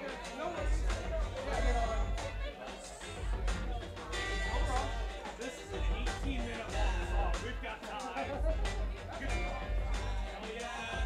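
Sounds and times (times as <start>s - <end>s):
live band music: 0.0s - 11.0s
person singing: 0.0s - 11.0s
steady low bass: 0.6s - 11.0s.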